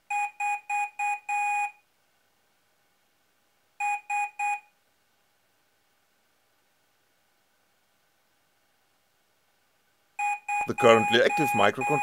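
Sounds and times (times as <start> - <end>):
piezo buzzer beeping morse code: 10.2 - 12.0.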